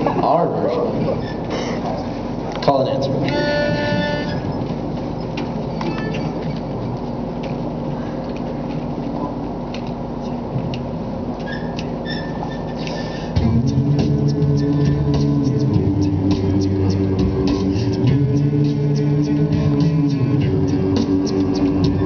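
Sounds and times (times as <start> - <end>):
low room rumble: 0.0 - 22.0
male choir singing low chord: 13.4 - 22.0.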